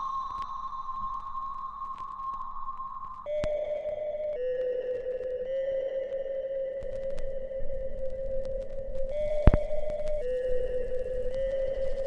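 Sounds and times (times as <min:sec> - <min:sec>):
sombre electronic music: 0:03.2 - 0:12.0.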